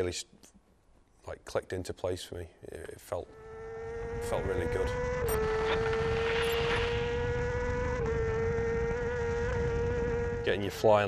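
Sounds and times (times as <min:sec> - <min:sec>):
motorcycle engine at high revs: 0:03.2 - 0:11.0.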